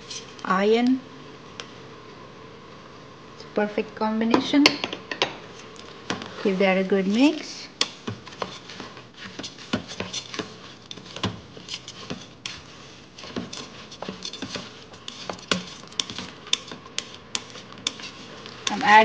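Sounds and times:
utensil scraping metal pot: 0.0 - 0.5, 6.4 - 19.0.

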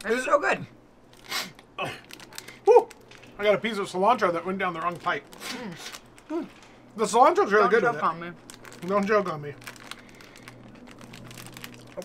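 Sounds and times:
chip bag crinkling: 1.1 - 6.8, 7.8 - 12.0.

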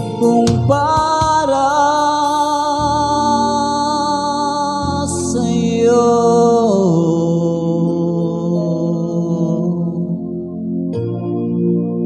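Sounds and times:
man singing a long low note: 0.0 - 10.9
soft sustained backing track: 0.0 - 12.0.

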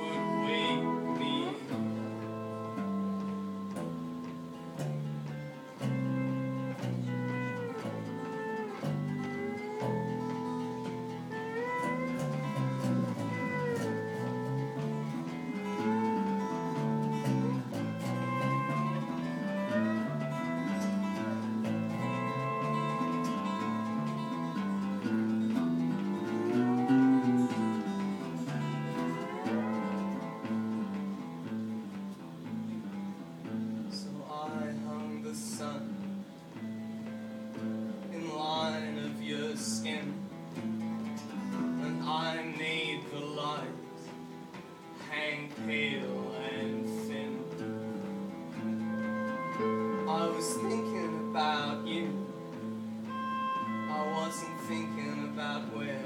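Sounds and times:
lead guitar melody: 0.0 - 56.0
rhythm guitar: 0.0 - 56.0.

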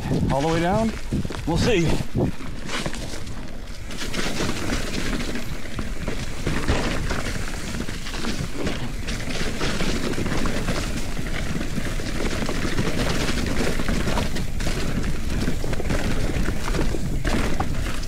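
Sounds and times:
wind on microphone: 0.0 - 5.1
bike clattering over rocks: 0.0 - 18.0.

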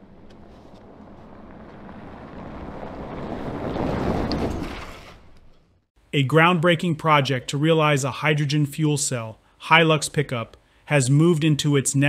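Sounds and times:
tyres on gravel and wind rush: 0.0 - 5.9.

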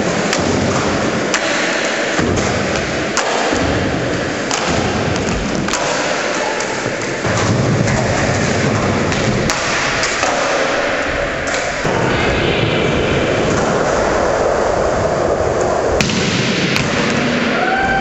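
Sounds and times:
skateboards popping and landing: 0.0 - 17.5
skateboard wheels rolling on concrete: 0.0 - 18.0.

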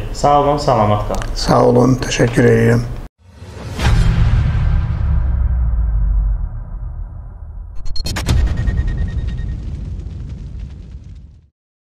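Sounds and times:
deep low boom rumble: 3.3 - 11.5.

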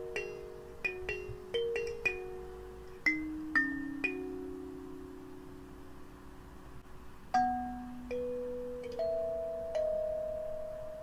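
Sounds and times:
kalimba notes plucked: 0.0 - 5.6, 7.4 - 11.0.

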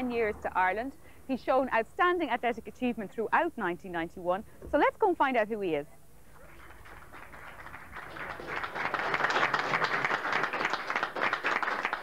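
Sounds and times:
audience applauding: 6.4 - 12.0.

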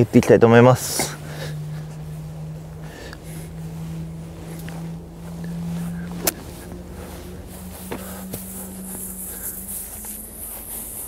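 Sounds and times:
steady low hum: 0.0 - 11.0
wind rumbling on microphone: 0.0 - 11.0.

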